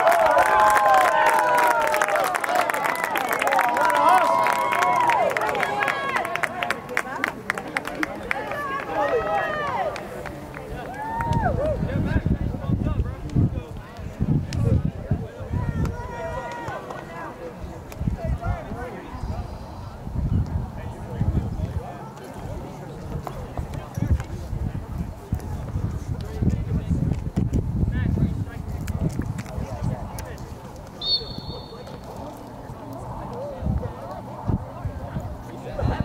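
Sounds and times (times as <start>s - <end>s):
people shouting outdoors: 8.4s - 10.0s.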